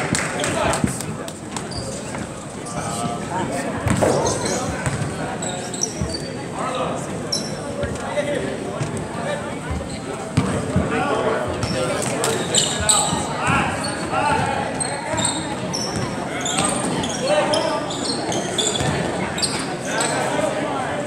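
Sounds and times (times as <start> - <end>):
spectators chattering: 0.0 - 21.0
sneaker squeaks: 1.6 - 3.2, 3.8 - 6.6, 7.3 - 8.0, 9.7 - 10.8, 11.6 - 20.5.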